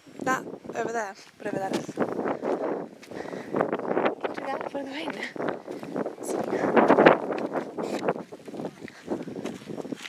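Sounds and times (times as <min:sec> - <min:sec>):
wind buffeting microphone: 0:00.0 - 0:10.0
footsteps on gravel: 0:01.0 - 0:10.0.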